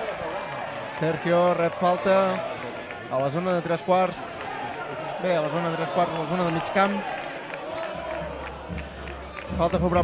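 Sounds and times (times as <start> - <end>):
stadium crowd noise: 0.0 - 10.0.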